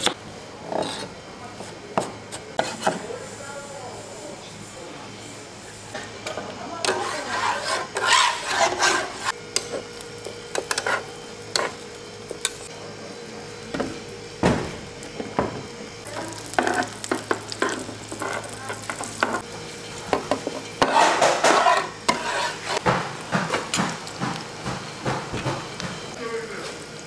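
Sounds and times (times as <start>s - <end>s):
spatula scraping a griddle: 0.6s - 1.7s, 2.6s - 3.1s, 6.8s - 9.9s, 10.5s - 11.8s, 16.5s - 19.4s, 20.2s - 22.9s
egg sizzling in oil: 16.0s - 22.9s.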